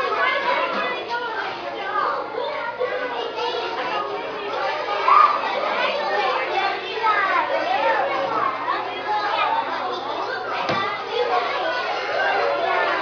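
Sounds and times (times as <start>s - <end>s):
children chattering: 0.0s - 13.0s.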